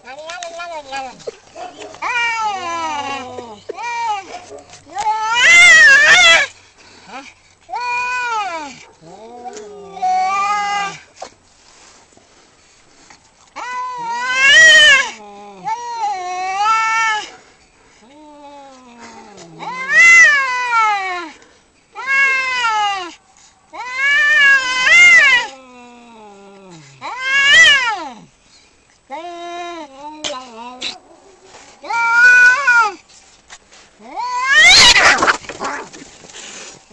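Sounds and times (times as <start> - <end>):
cats yowling: 0.3 - 6.5, 7.7 - 11.0, 13.6 - 17.3, 18.8 - 21.2, 22.0 - 25.6, 27.0 - 28.0, 30.0 - 33.0, 34.1 - 36.1.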